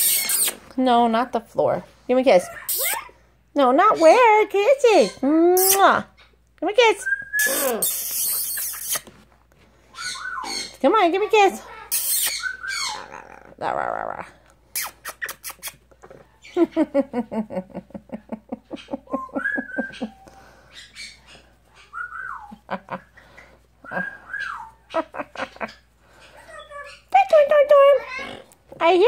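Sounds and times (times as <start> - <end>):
parrot calling: 0.0 - 0.6, 2.5 - 3.1, 7.0 - 9.1, 9.9 - 10.8, 11.6 - 13.6, 18.8 - 22.6, 23.2 - 27.2
parrot whistles: 7.0 - 9.0, 11.9 - 13.0.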